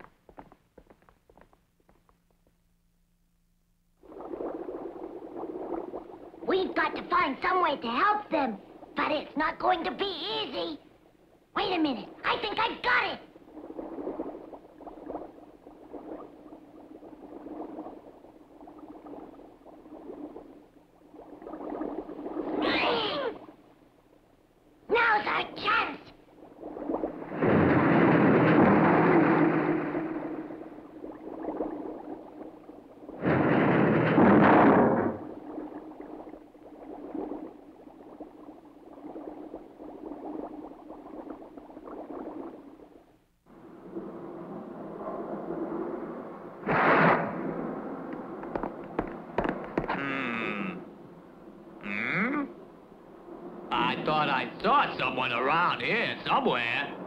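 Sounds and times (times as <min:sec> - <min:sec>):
cartoon rushing noise: 0:22.5 - 0:23.4.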